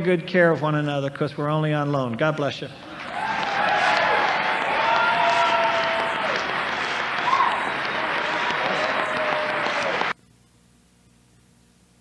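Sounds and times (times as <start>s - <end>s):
audience applauding: 2.9s - 10.2s.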